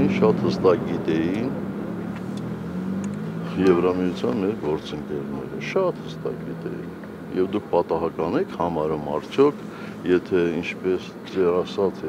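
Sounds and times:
man speaking: 0:00.0 - 0:01.6, 0:03.5 - 0:12.0.

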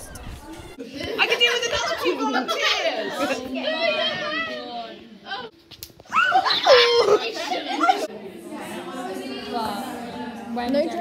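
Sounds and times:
girls talking and exclaiming: 0:00.0 - 0:11.0.

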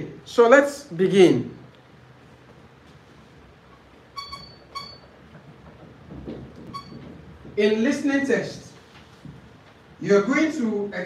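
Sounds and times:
short high-pitched squeaks: 0:04.1 - 0:05.1, 0:06.7 - 0:07.0.

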